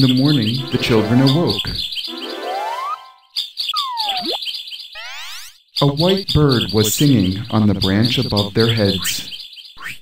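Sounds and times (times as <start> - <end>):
bird chirping: 0.0 - 10.0.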